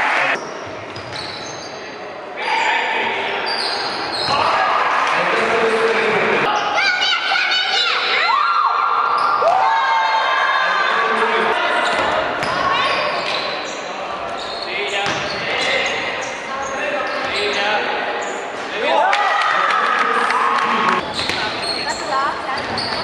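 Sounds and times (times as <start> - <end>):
sneakers squeaking: 0.3 - 4.6, 9.0 - 9.5, 11.6 - 18.7, 21.0 - 23.0
players' voices: 1.6 - 23.0.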